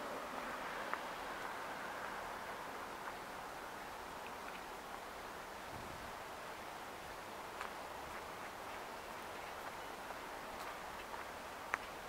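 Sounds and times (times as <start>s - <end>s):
steady background hiss: 0.0s - 12.0s
footsteps on pavement: 7.4s - 12.0s.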